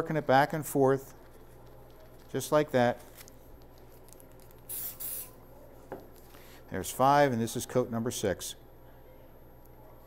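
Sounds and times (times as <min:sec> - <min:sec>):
spray hiss: 0:04.7 - 0:05.3.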